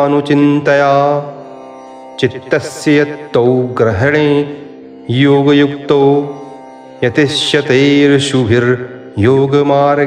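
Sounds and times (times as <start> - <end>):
man chanting: 0.0 - 1.5, 2.2 - 10.0
soft instrumental music: 0.0 - 10.0.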